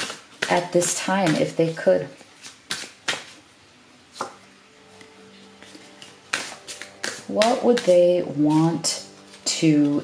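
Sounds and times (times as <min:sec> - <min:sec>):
cards tapping and flicking: 0:00.0 - 0:03.4, 0:05.6 - 0:08.2.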